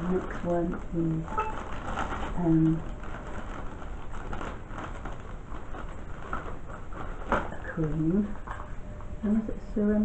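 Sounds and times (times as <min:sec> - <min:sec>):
rustling of handled product: 0:00.0 - 0:09.3.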